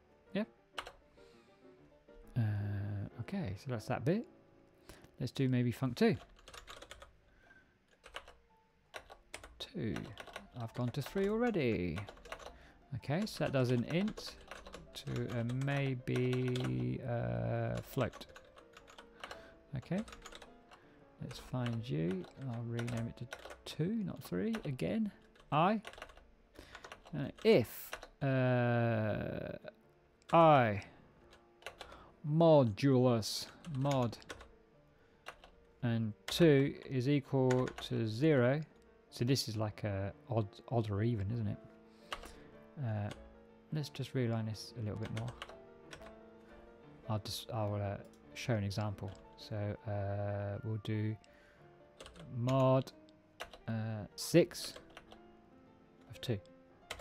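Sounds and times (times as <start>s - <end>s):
soft background music: 0.0s - 57.0s
keyboard typing clicks: 0.8s - 1.0s, 6.2s - 7.1s, 7.9s - 12.6s, 13.2s - 17.0s, 17.6s - 20.7s, 21.3s - 28.2s, 31.3s - 32.0s, 35.2s - 35.6s, 37.5s - 37.9s, 42.1s - 42.4s, 45.0s - 46.1s, 52.0s - 52.6s, 53.4s - 53.7s, 54.6s - 55.2s, 56.1s - 57.0s.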